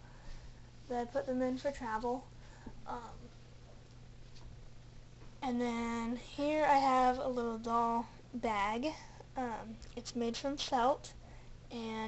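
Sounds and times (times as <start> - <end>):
low hum with light hiss: 0.0 - 12.0.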